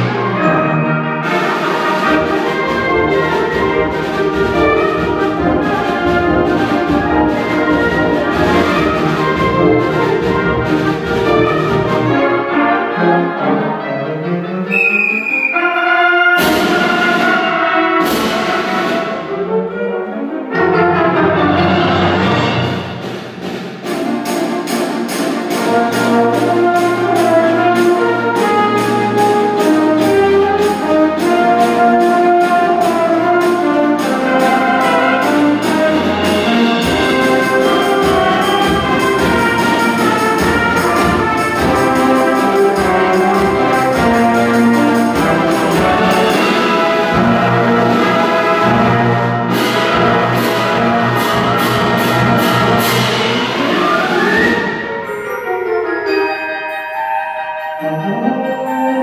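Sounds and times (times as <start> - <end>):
regular percussion strokes: 0.0 - 13.0, 14.7 - 59.0
wind ensemble playing: 0.0 - 59.0.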